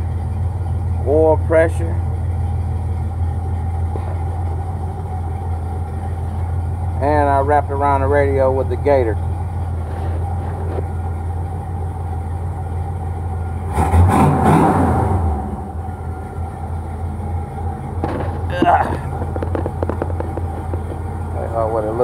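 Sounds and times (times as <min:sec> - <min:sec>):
car engine idling: 0:00.0 - 0:22.0.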